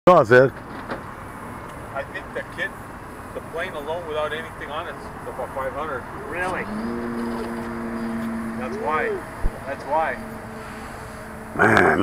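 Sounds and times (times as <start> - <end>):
outdoor background hiss: 0.1 - 12.0
man speaking: 3.4 - 6.8, 8.5 - 10.3.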